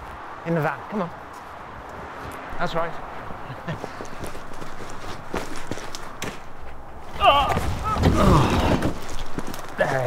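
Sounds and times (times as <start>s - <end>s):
footsteps: 1.2s - 9.8s.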